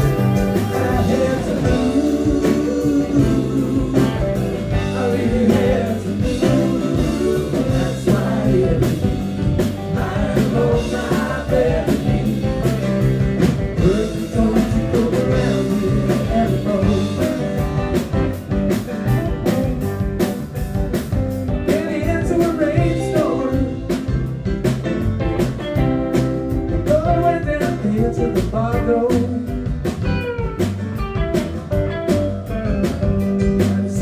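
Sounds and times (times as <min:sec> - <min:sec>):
drum kit steady beat: 0:00.0 - 0:34.0
electric bass: 0:00.0 - 0:34.0
electric guitar: 0:00.0 - 0:34.0
keyboard: 0:00.0 - 0:34.0.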